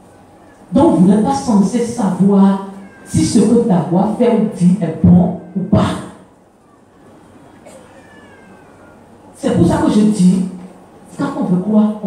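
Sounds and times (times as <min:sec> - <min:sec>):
amplified speech: 0:00.7 - 0:06.2, 0:09.4 - 0:12.0.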